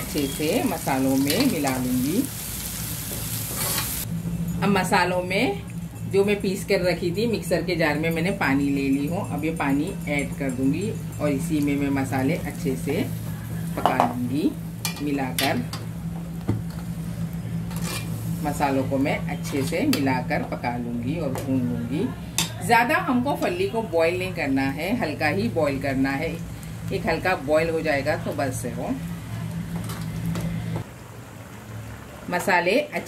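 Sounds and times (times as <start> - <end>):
low hum: 4.0 - 22.3
spoon scraping pot: 17.7 - 18.2
spoon stirring in metal pot: 17.7 - 18.2.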